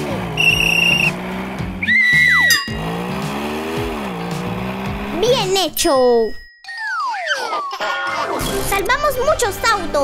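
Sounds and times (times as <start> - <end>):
car engine drone: 0.0 - 5.8
background music: 0.0 - 6.0, 6.8 - 10.0
tire squeal: 0.3 - 3.3.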